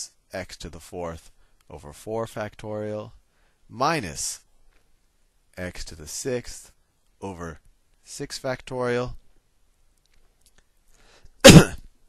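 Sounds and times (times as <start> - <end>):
person sneezing: 11.4 - 11.9.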